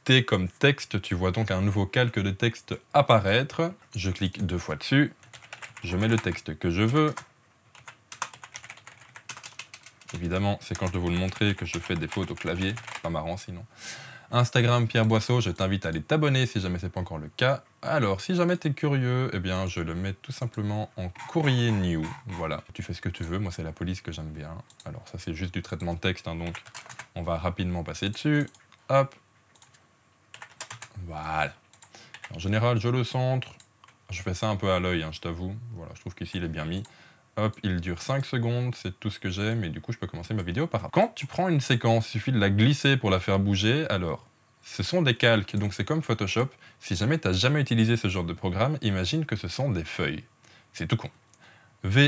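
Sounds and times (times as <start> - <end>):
typing on computer keyboard: 5.2 - 13.1, 26.4 - 27.1, 29.5 - 30.9, 31.7 - 32.4.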